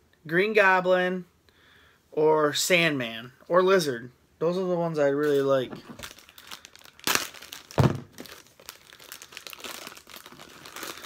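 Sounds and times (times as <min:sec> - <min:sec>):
packaging crinkling and tearing: 0:05.2 - 0:11.0.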